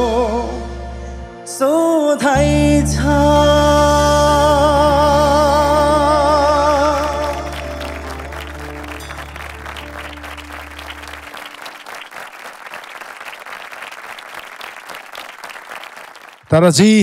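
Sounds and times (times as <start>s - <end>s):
song ending: 0.0s - 12.1s
held bass note: 2.4s - 11.3s
audience applauding: 6.8s - 16.6s.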